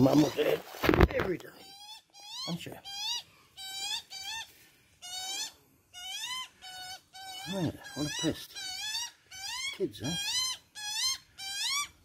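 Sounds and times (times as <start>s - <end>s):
young magpie begging calls: 1.6s - 12.0s.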